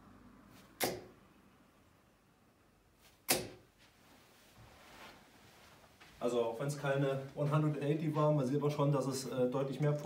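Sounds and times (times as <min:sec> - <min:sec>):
darts thudding into dartboard: 0:00.6 - 0:01.2, 0:03.2 - 0:03.7.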